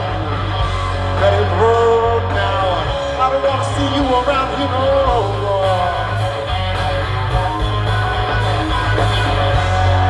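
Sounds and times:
bass guitar: 0:00.0 - 0:10.0
drums: 0:00.0 - 0:10.0
electric guitar: 0:00.0 - 0:10.0.

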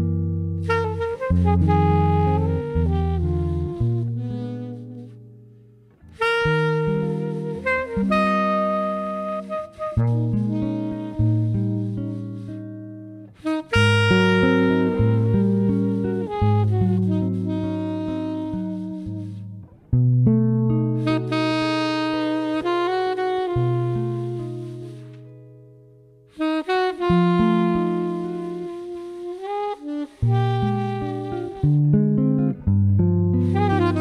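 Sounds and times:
saxophone: 0:00.0 - 0:20.1, 0:20.7 - 0:25.6, 0:26.3 - 0:34.0
jazz guitar chords: 0:00.0 - 0:34.0.

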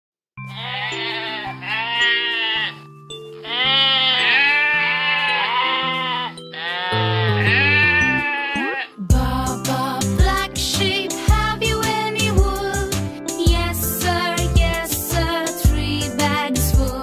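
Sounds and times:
sheep bleating: 0:00.4 - 0:02.8, 0:03.4 - 0:09.0
children's song music: 0:00.4 - 0:17.0.

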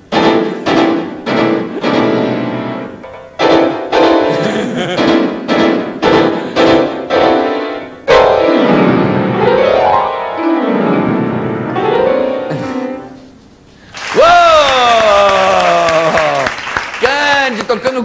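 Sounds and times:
piano chords: 0:00.0 - 0:13.9.

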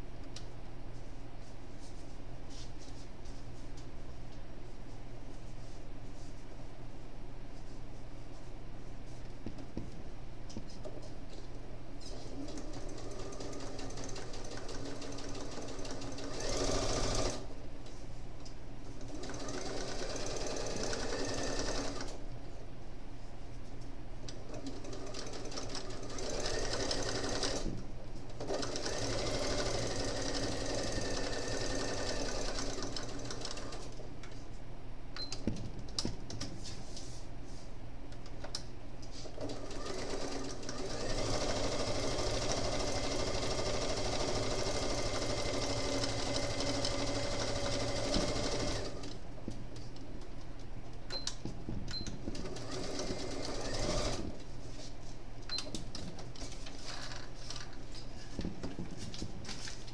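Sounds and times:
sewing machine stitching: 0:12.3 - 0:17.5, 0:19.1 - 0:22.2, 0:24.5 - 0:27.7, 0:28.4 - 0:34.0, 0:39.4 - 0:49.2, 0:52.3 - 0:54.4.

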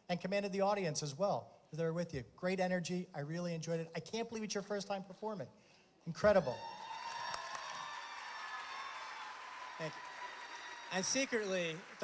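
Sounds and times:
audience applauding and cheering: 0:06.4 - 0:12.0.

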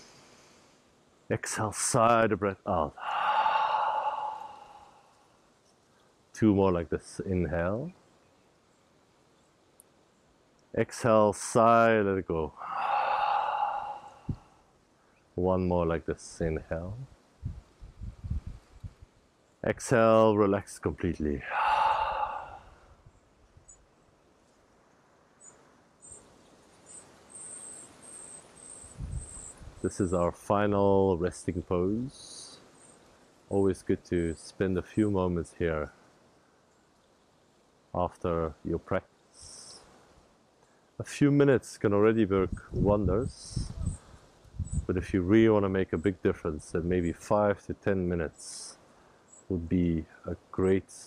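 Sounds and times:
insect chirps: 0:02.9 - 0:06.3, 0:12.5 - 0:15.4, 0:21.4 - 0:30.1, 0:31.9 - 0:33.5, 0:35.9 - 0:38.0, 0:39.0 - 0:41.0, 0:48.7 - 0:49.5
man sighing exhale: 0:03.0 - 0:05.2, 0:12.5 - 0:14.6, 0:21.4 - 0:22.9.

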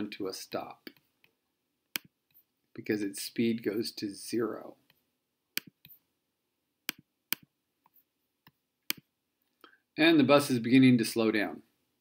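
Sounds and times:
computer mouse clicking: 0:05.6 - 0:06.0.

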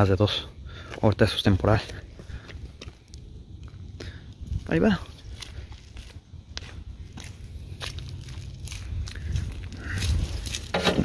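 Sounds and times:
faint footsteps: 0:00.7 - 0:11.0
wind rumble on microphone: 0:02.0 - 0:11.0.

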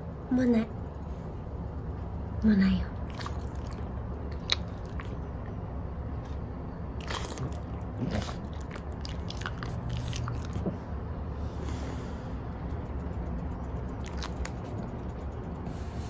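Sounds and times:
steady low hum: 0:00.0 - 0:16.0
dog licking and smacking lips: 0:03.1 - 0:05.3, 0:07.0 - 0:10.8, 0:14.0 - 0:14.8.

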